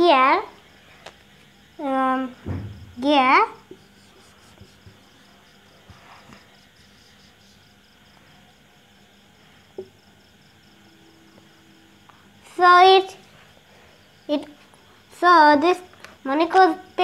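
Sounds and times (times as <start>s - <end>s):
insect chirping: 0.0s - 17.0s
marker on whiteboard: 3.0s - 7.7s.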